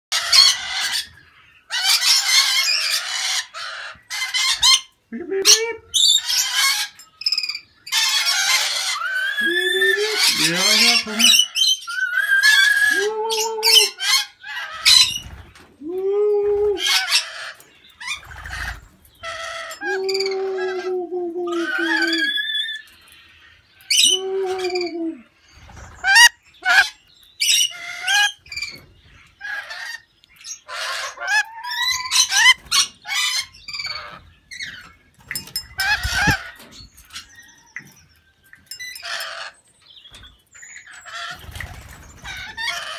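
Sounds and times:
parrots screeching and chattering: 0.1 - 15.7, 16.8 - 23.0, 23.8 - 37.7, 38.7 - 39.6, 40.6 - 42.9.

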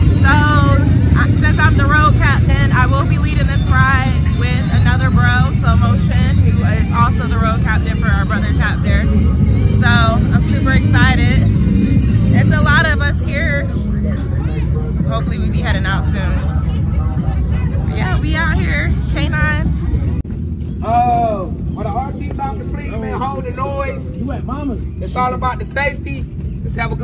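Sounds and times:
people's voices: 0.0 - 27.0.

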